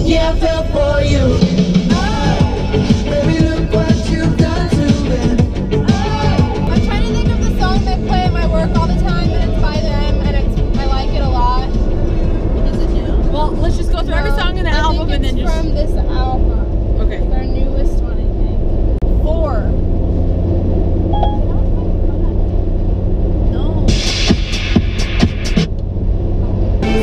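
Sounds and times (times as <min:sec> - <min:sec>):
person singing with music: 0:00.0 - 0:10.0, 0:26.8 - 0:27.0
road rumble inside car: 0:00.0 - 0:27.0.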